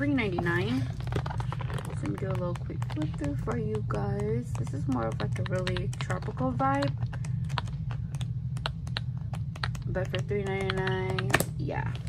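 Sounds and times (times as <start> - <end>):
paper pages flipping quickly: 0.7 - 3.5.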